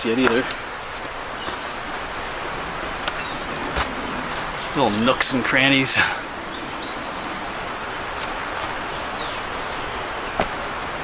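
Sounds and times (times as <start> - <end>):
road traffic rushing: 0.6 - 11.0.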